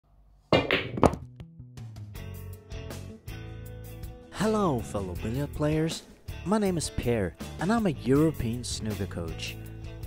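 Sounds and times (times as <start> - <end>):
snooker balls clacking: 0.6 - 1.3.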